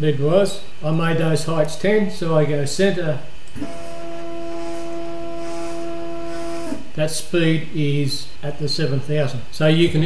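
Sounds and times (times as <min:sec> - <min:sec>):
stepper motor whine: 0:03.5 - 0:07.0.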